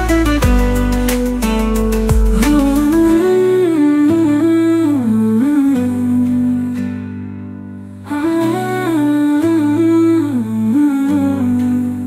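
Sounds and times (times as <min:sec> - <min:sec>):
low backing notes: 0:00.0 - 0:04.6
person humming a melody: 0:02.0 - 0:06.9.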